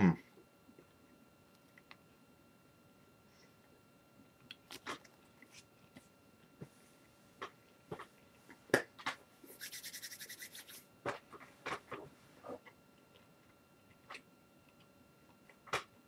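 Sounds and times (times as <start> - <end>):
short scratchy strokes: 9.5 - 10.9.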